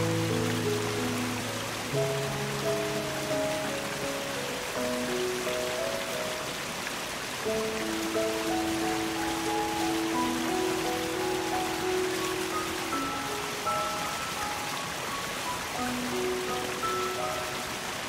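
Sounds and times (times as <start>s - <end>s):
gentle piano music: 0.0s - 18.0s
waterfall rushing: 0.0s - 18.0s.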